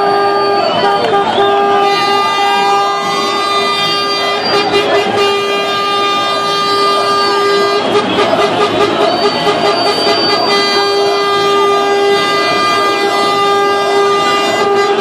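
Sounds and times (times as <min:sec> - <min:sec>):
crowd celebrating: 0:00.0 - 0:15.0
vehicle horn blast: 0:00.0 - 0:15.0.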